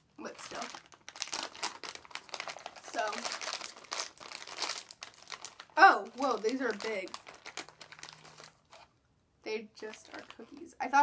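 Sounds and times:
plastic snack bag crinkling: 0:00.2 - 0:08.9, 0:09.8 - 0:10.8.

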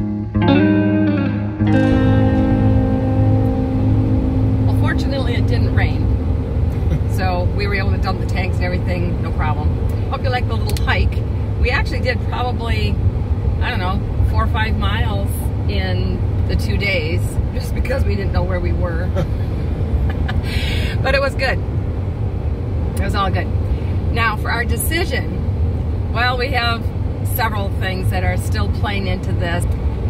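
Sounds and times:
vehicle road rumble from inside: 0:01.6 - 0:30.0
people talking: 0:04.7 - 0:06.1, 0:06.8 - 0:13.0, 0:13.6 - 0:19.3, 0:20.4 - 0:21.6, 0:23.0 - 0:23.5, 0:24.1 - 0:25.4, 0:26.2 - 0:29.7.

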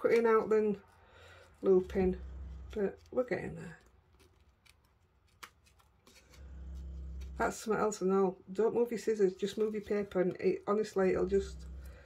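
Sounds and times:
low steady hum: 0:00.0 - 0:03.9, 0:06.1 - 0:12.0
scissors snipping paper: 0:02.7 - 0:06.4.

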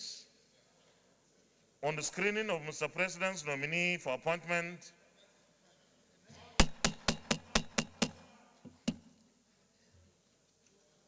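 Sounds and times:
sharp knocks: 0:06.6 - 0:09.1.

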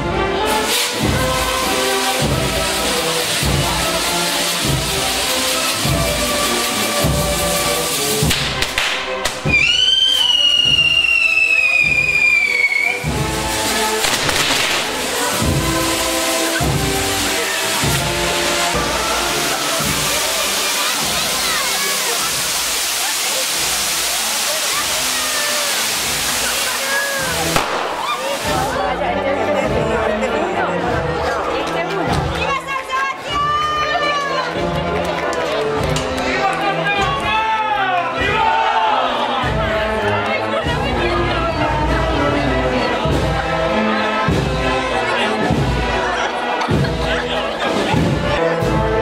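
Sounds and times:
fireworks fizzing and crackling: 0:00.4 - 0:29.6
whistling firework shrieking: 0:09.5 - 0:13.1, 0:25.2 - 0:28.6.

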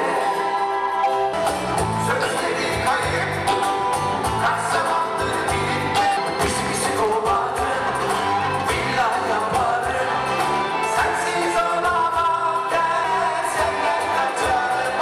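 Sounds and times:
keyboards: 0:00.0 - 0:15.0
electric bass: 0:01.4 - 0:15.0
men singing: 0:02.0 - 0:15.0.

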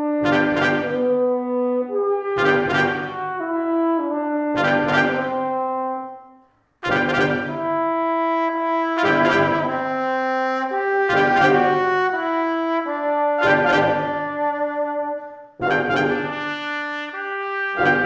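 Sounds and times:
brass quintet playing chords: 0:00.0 - 0:18.0.

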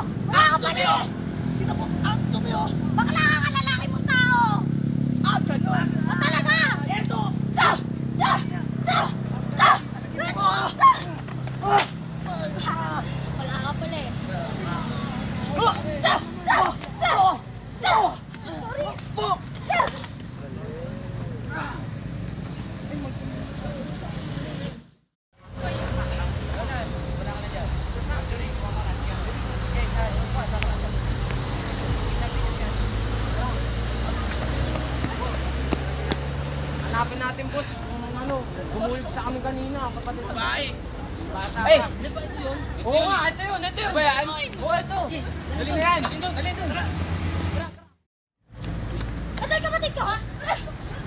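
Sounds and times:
steady low rumble: 0:25.6 - 0:34.2.

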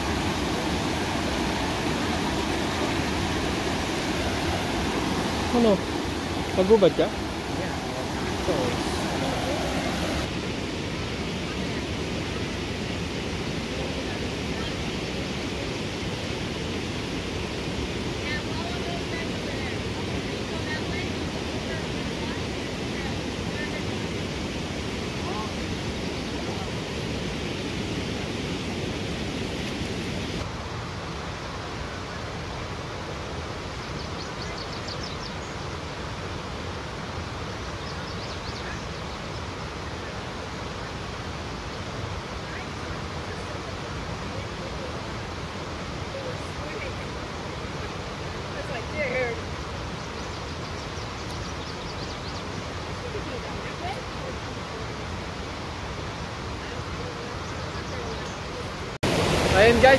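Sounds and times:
creek water rushing over rocks: 0:00.0 - 0:59.9.

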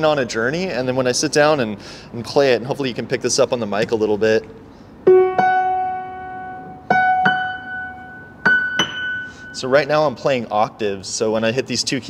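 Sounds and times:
piano octaves ringing: 0:05.0 - 0:10.2.

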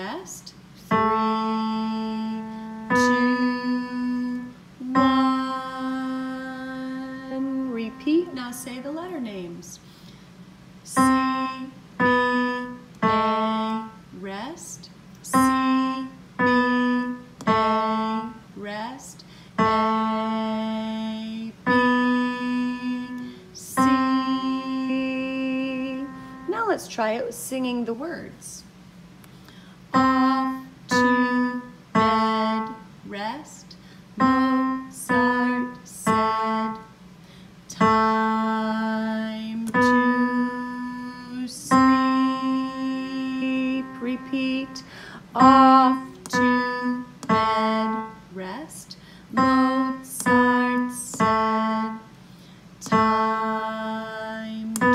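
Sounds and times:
piano playing slow single notes: 0:00.9 - 0:08.5, 0:10.9 - 0:14.0, 0:15.3 - 0:18.5, 0:19.6 - 0:26.6, 0:30.0 - 0:32.9, 0:37.7 - 0:48.4, 0:49.3 - 0:54.9
piano single notes: 0:39.6 - 0:48.5.

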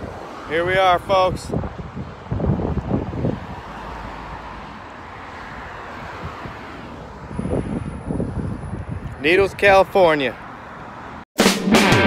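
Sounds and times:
wind buffeting microphone: 0:00.0 - 0:03.8, 0:05.8 - 0:10.0
road traffic passing: 0:00.0 - 0:12.0.

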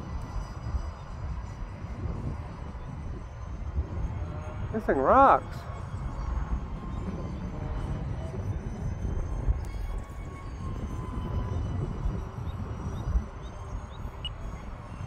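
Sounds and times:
model jet whine overhead: 0:00.0 - 0:15.0
wind buffeting microphone: 0:00.0 - 0:15.0.

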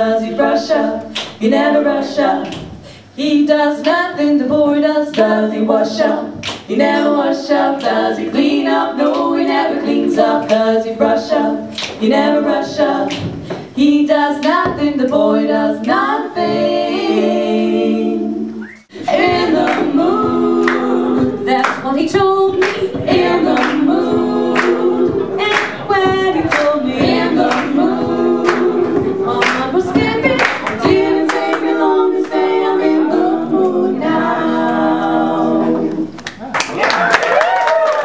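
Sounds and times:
female vocal trio singing harmony: 0:00.0 - 0:36.2.

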